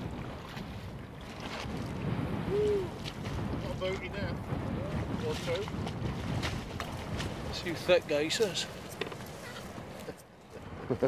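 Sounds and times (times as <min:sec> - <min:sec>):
boots wading through icy water: 0:00.0 - 0:02.0, 0:05.0 - 0:10.1.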